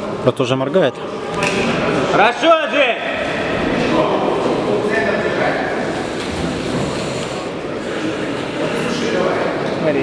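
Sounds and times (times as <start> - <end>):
people talking in a large hall: 0.0 - 10.0.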